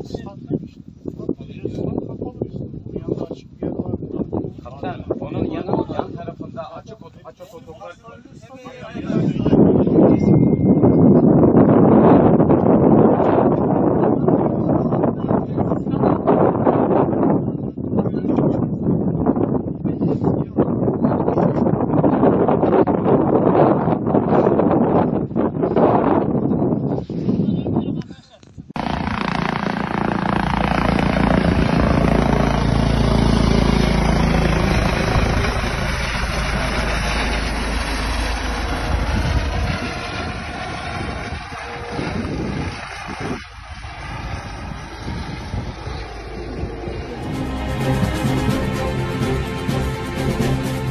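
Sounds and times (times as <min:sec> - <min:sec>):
wind buffeting microphone: 0:00.0 - 0:48.1
helicopter rotor and engine: 0:28.7 - 0:50.9.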